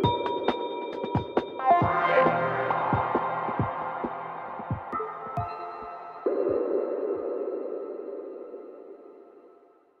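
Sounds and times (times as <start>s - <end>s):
kick drums: 0.0s - 2.1s, 2.8s - 5.7s
psytrance track: 0.0s - 7.8s.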